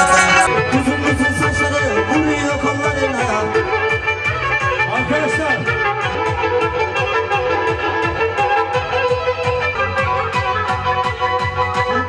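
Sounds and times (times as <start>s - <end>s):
fiddle-like keyboard melody: 0.0s - 12.0s.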